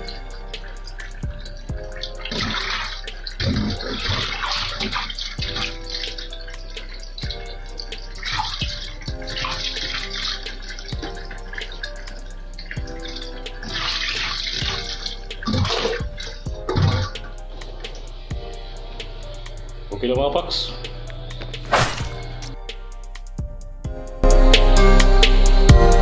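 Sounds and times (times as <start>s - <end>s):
water splashing: 0.0s - 18.2s, 21.7s - 22.5s.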